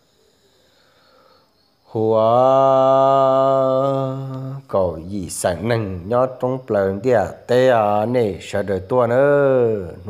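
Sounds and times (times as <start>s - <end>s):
man chanting a long note: 1.9s - 10.0s.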